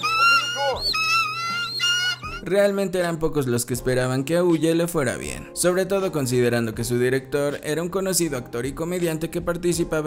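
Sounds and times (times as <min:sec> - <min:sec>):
birds screeching cries: 0:00.0 - 0:02.4.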